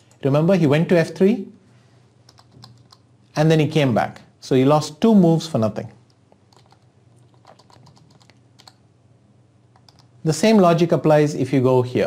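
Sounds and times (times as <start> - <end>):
typing on computer keyboard: 2.3 - 3.0, 6.5 - 8.8, 9.7 - 10.1.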